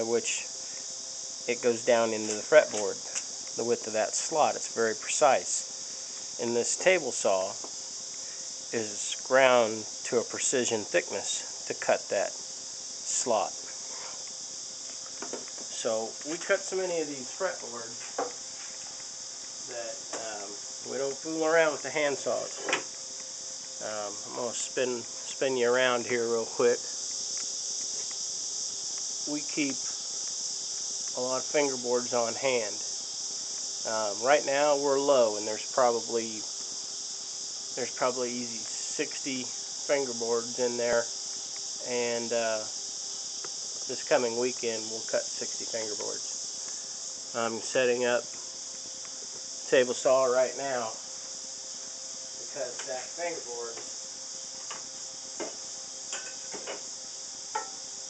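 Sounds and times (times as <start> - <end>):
crickets chirping shrilly: 0.0 - 58.0.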